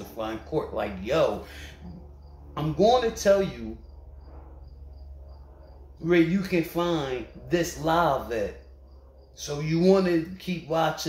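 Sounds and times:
cricket chirping: 0:00.0 - 0:11.0
low steady hum: 0:00.0 - 0:11.0.

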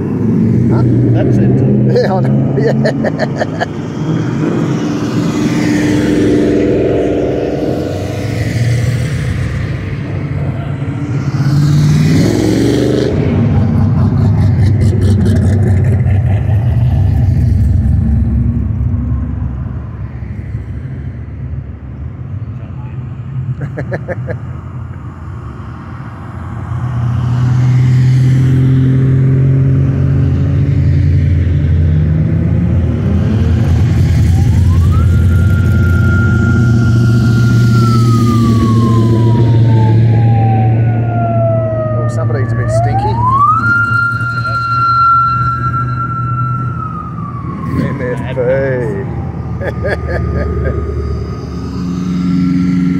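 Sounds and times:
low rumble of car engines: 0:00.0 - 0:52.9
siren winding up and down: 0:04.9 - 0:18.2, 0:33.4 - 0:52.9.

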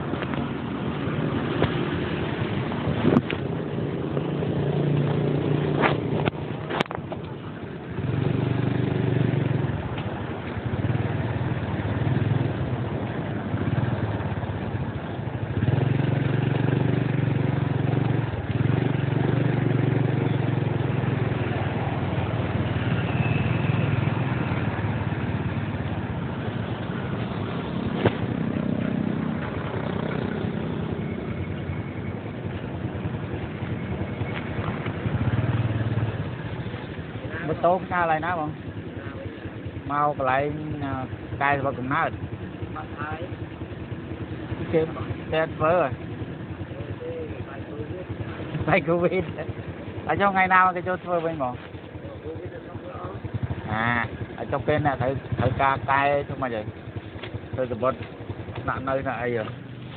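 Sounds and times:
motor scooter engine running: 0:00.0 - 0:59.9
passing traffic: 0:00.0 - 0:59.9.

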